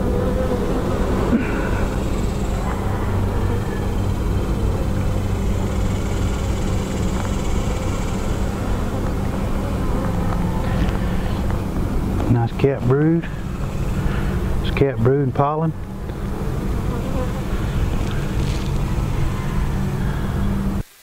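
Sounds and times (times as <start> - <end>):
honeybees buzzing: 0.0 - 20.8.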